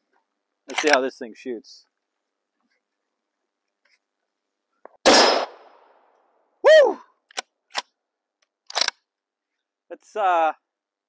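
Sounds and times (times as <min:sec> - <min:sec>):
rifle bolt clacking: 0:00.7 - 0:01.0, 0:07.3 - 0:09.0
rifle bolt clicking: 0:00.7 - 0:01.0, 0:07.3 - 0:09.0.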